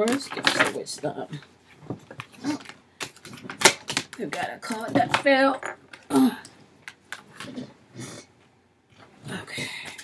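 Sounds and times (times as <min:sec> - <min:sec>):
cards being shuffled: 0:00.0 - 0:05.3.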